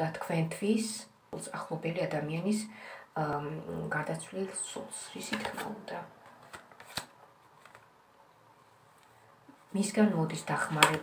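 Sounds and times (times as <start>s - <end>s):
cards being shuffled: 5.2s - 7.9s.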